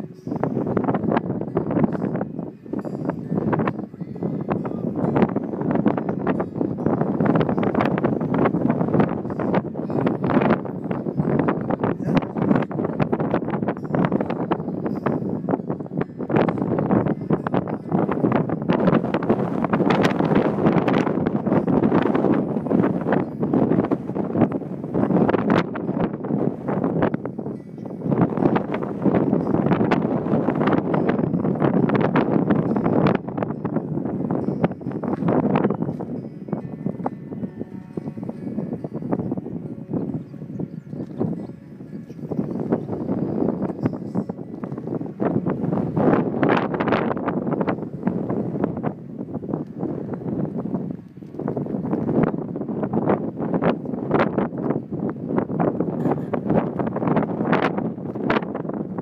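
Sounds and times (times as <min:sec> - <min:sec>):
acoustic guitar strumming: 0:00.0 - 0:59.0
wind buffeting microphone: 0:00.0 - 0:59.0.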